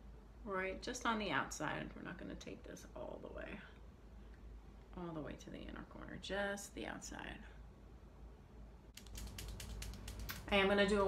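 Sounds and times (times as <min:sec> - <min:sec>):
makeup items clicking and tapping: 0:09.0 - 0:10.5.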